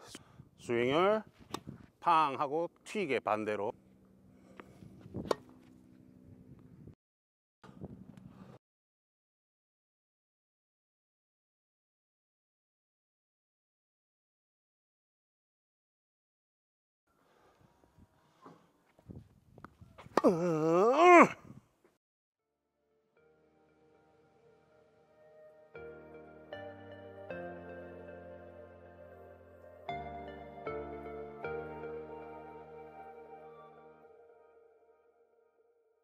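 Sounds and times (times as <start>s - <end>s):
person's drawn-out exclamation: 20.2s - 21.5s.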